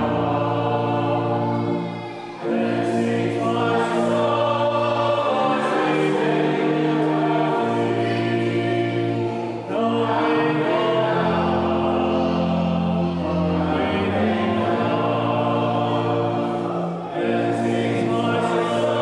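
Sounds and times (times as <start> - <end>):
congregation singing: 0.0 - 19.0.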